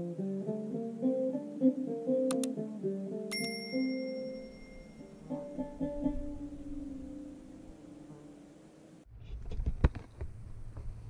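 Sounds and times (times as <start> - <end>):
plucked oud notes: 0.0 - 3.3, 5.0 - 8.3
click: 2.3 - 2.5
notification bell ding: 3.3 - 5.2.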